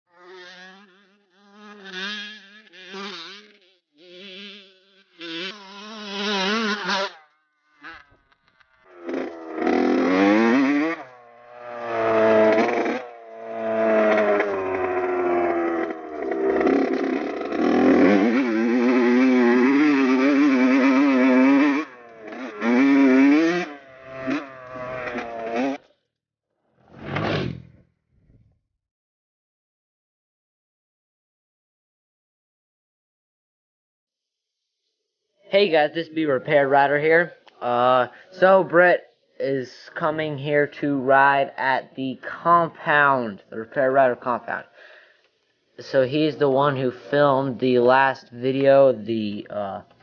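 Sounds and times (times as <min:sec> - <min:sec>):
dirt bike engine revving: 0:00.1 - 0:25.9, 0:26.9 - 0:27.8.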